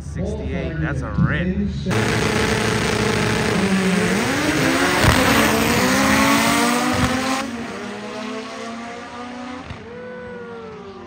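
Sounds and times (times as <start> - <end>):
car engines running at steady revs: 1.9 - 9.8.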